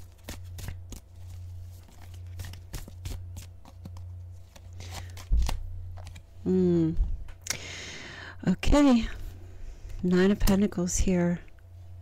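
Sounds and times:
cards shuffling: 0:00.0 - 0:06.3
steady low hum: 0:00.0 - 0:12.0.

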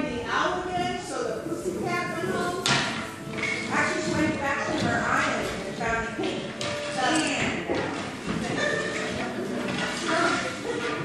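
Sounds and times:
children talking: 0:00.3 - 0:02.8, 0:03.4 - 0:11.0.

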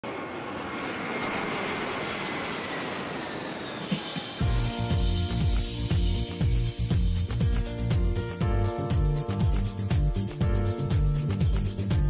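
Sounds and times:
aircraft roar passing: 0:00.0 - 0:07.4
faint high whine: 0:00.1 - 0:07.4.

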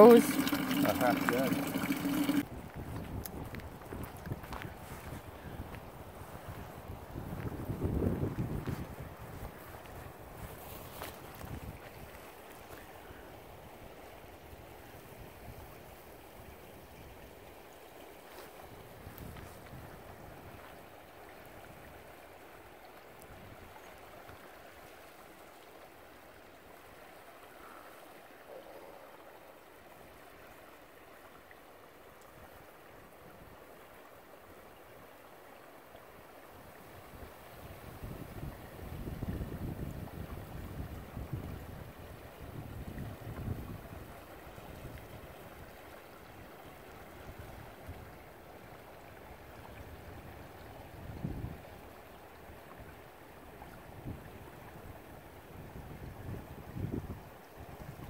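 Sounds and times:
river current flowing: 0:00.0 - 0:02.5, 0:09.0 - 0:39.0, 0:43.8 - 0:58.0
wind buffeting microphone: 0:02.4 - 0:10.5.

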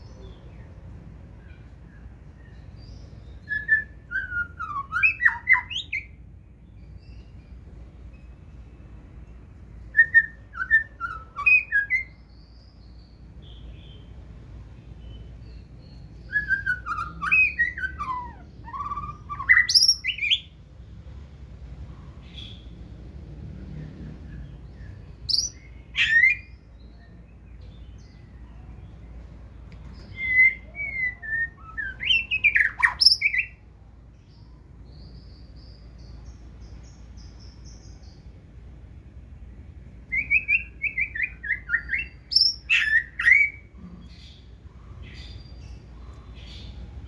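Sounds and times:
bird singing whistled phrases: 0:03.3 - 0:06.2, 0:09.9 - 0:12.3, 0:16.1 - 0:20.5, 0:25.3 - 0:26.6, 0:30.0 - 0:33.6, 0:40.1 - 0:43.7.

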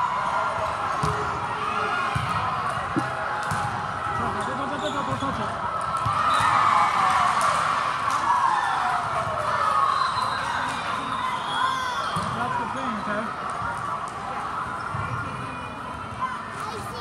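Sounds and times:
chatter and shouts of people: 0:00.0 - 0:17.0
volleyball hits: 0:01.0 - 0:01.4, 0:02.1 - 0:04.4.

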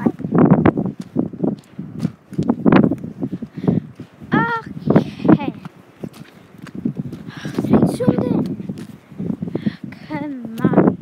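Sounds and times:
person's voice: 0:00.0 - 0:00.2, 0:04.3 - 0:05.7, 0:07.3 - 0:08.6, 0:09.8 - 0:11.0
footsteps on gravel: 0:00.0 - 0:09.5.

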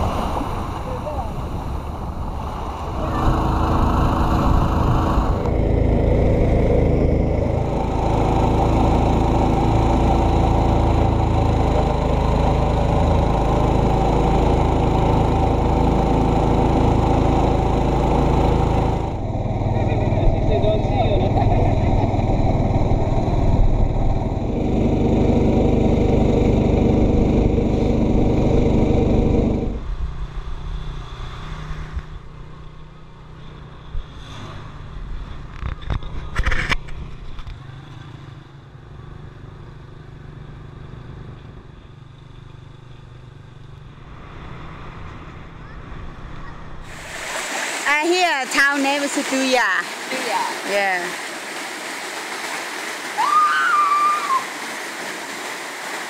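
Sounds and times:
motorboat engine running: 0:00.7 - 0:30.4, 0:34.8 - 0:51.4.

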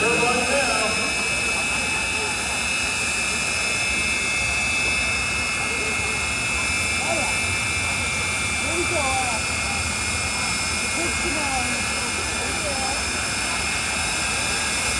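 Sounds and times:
jet turbine high whine: 0:00.0 - 0:14.9.

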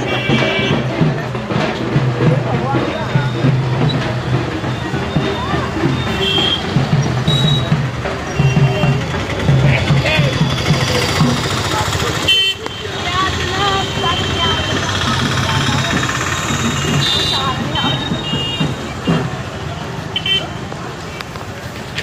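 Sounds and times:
motor traffic: 0:00.0 - 0:22.0
people chattering: 0:00.0 - 0:22.0
vehicle horn toots: 0:06.1 - 0:09.1, 0:12.2 - 0:14.7.

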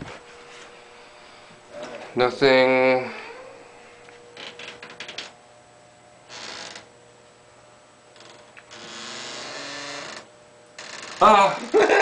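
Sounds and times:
low creak with hiss: 0:03.0 - 0:05.4, 0:06.3 - 0:06.9, 0:08.1 - 0:11.4.

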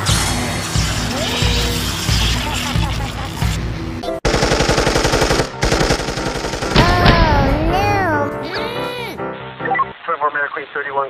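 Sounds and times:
automatic gunfire: 0:04.2 - 0:07.2.

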